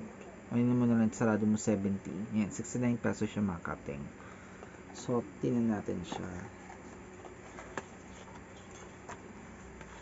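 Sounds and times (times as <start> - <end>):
low room hum: 0.0 - 10.0
handling noise: 4.6 - 10.0.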